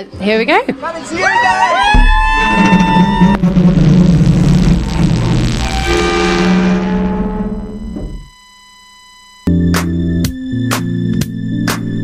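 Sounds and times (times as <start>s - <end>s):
deep rumbling boom: 1.9s - 8.3s
wash of noise and held tones: 2.3s - 9.4s.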